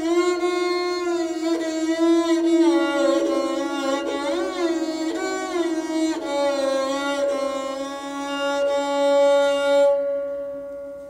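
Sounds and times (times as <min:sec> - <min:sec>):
instrument holding long note: 0:00.0 - 0:11.0.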